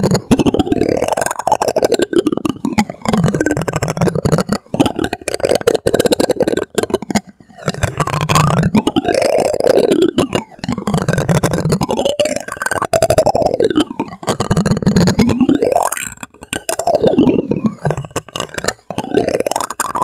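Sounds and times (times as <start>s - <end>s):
plastic spoon scraping textured plastic: 0.0s - 20.0s.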